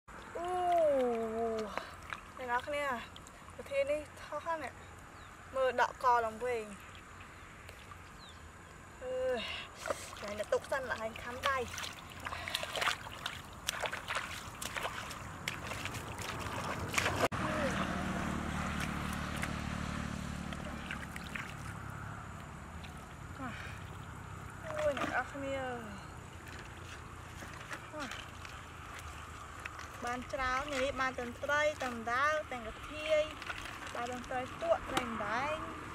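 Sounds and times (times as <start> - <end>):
faint water splashing: 0.1 - 35.9.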